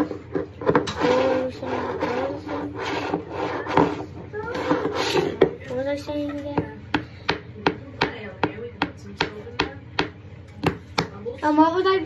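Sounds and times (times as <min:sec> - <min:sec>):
bottle scraping on tabletop: 0:00.0 - 0:05.6.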